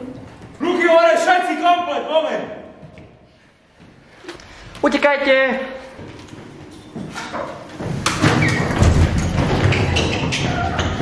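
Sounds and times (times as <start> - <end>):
people rushing footsteps and thuds: 6.0 - 11.0.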